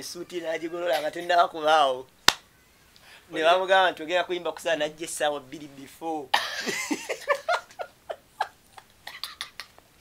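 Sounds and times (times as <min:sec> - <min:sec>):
man speaking: 0:00.0 - 0:02.1, 0:03.3 - 0:06.4
hand snap: 0:02.2 - 0:03.1.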